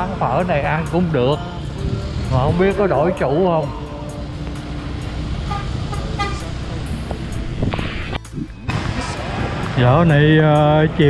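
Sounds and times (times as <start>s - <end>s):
road traffic rumble: 0.0s - 11.0s
short horn toots: 5.5s - 6.6s.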